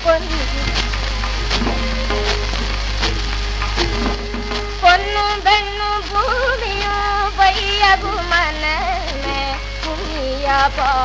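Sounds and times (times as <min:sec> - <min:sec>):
low hum: 0:00.0 - 0:11.0
old record instrumental music: 0:00.0 - 0:11.0
percussion strokes: 0:00.0 - 0:11.0
record hiss: 0:00.0 - 0:11.0
record surface crackle: 0:00.0 - 0:11.0.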